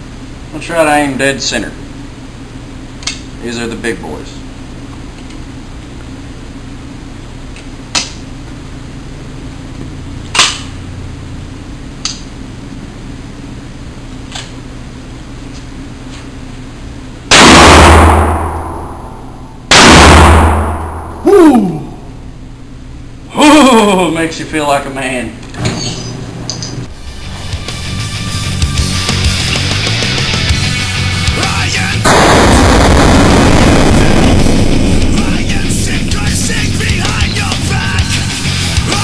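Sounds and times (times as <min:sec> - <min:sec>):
shotgun blasts with ringing echo: 0:17.3 - 0:21.2.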